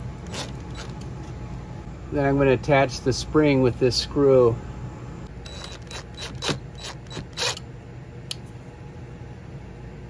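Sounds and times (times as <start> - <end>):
cordless driver driving screw: 0.2 - 0.9, 5.5 - 7.6.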